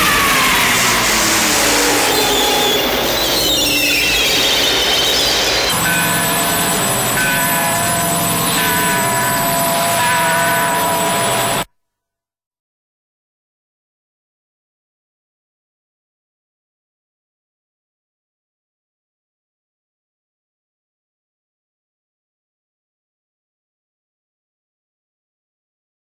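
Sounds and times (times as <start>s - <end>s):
squealing gliding electronic tones: 0.0s - 11.6s
held electronic chord: 0.0s - 11.7s
pulsing high tone: 0.0s - 11.7s.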